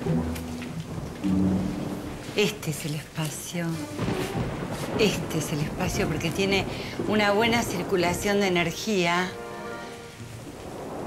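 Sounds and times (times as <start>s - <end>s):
low held tones: 0.0s - 2.4s
low thunder rumble: 0.0s - 11.0s
rain hiss: 0.0s - 11.0s.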